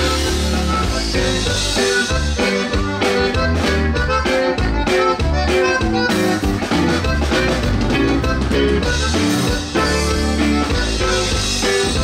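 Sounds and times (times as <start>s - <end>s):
bass: 0.0s - 12.0s
button accordion melody: 0.0s - 12.0s
drum kit beat: 0.0s - 12.0s
guitar strumming: 0.0s - 12.0s.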